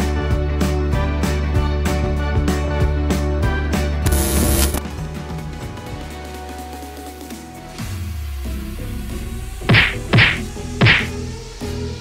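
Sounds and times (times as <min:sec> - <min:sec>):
background music with steady beat: 0:00.0 - 0:12.0
cartoon punch whacks: 0:09.7 - 0:11.2.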